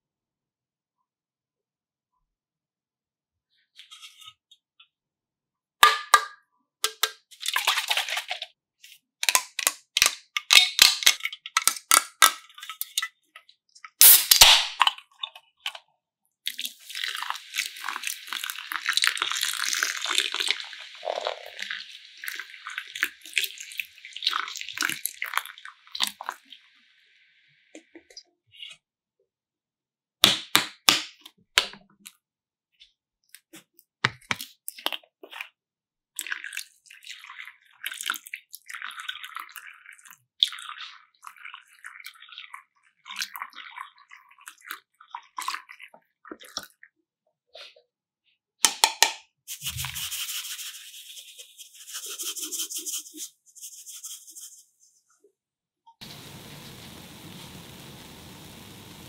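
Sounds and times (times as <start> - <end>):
cans and bottles clicking: 5.8 - 8.4
soda fizzing pour: 16.5 - 26.6, 56.0 - 59.0.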